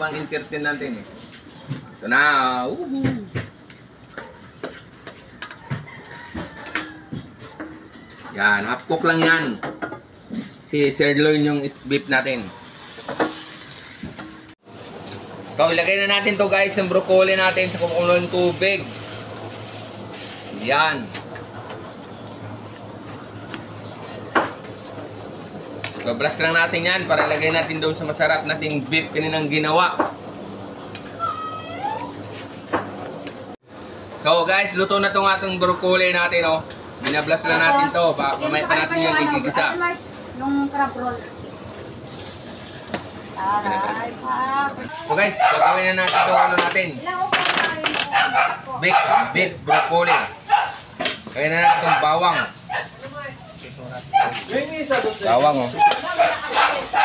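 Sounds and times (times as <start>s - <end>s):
spatula scraping a wok: 12.6s - 15.2s.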